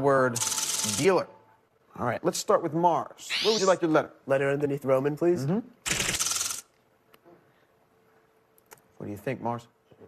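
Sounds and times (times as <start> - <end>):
bright burst of rapid ticks: 0.4 - 1.1, 5.9 - 6.7.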